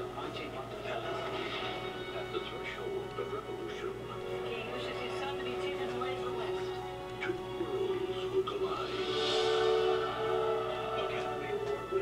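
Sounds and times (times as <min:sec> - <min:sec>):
music with sustained tones: 0:00.0 - 0:12.0
indistinct voices: 0:07.2 - 0:12.0.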